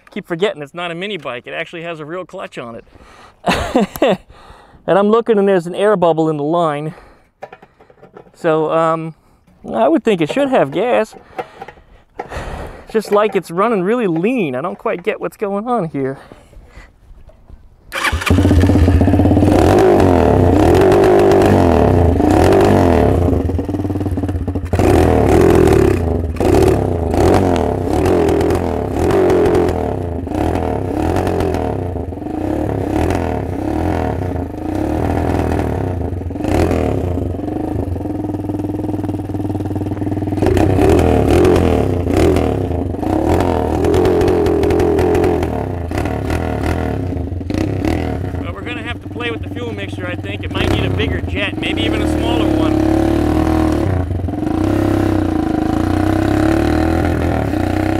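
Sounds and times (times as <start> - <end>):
minibike engine revving: 17.9 - 57.9.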